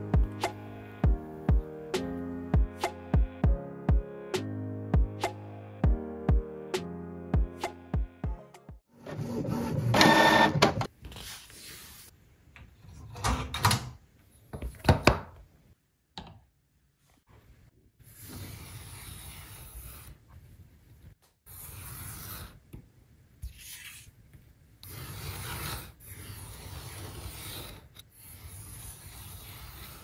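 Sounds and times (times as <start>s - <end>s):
printer motor whine: 9.1s - 10.8s
paper scraping: 18.1s - 20.2s, 21.5s - 22.6s, 23.4s - 24.1s, 24.8s - 30.0s.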